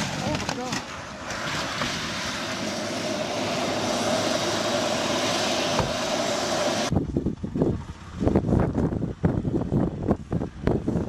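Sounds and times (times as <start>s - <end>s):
helicopter flying: 0.0s - 11.0s.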